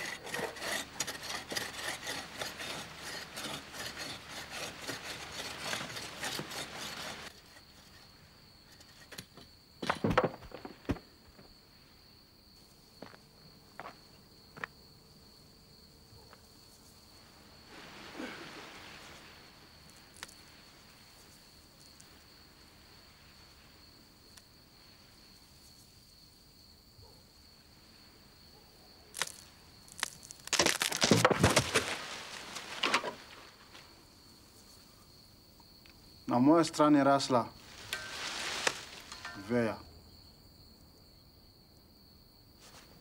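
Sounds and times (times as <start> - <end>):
rustling and cracking: 0.0 - 11.5, 29.1 - 34.0, 37.6 - 39.8
crickets chirping: 0.0 - 43.0.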